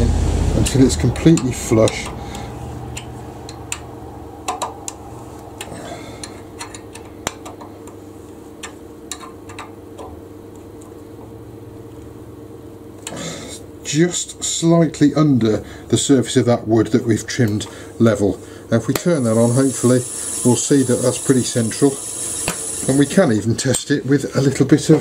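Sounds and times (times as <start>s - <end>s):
person speaking: 0.0s - 2.5s, 14.0s - 22.1s
steady low hum: 0.0s - 25.0s.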